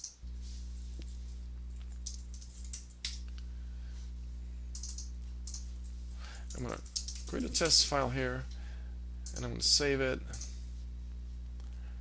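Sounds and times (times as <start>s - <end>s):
low electrical hum: 0.0s - 12.0s
keyboard keystrokes: 4.8s - 5.6s.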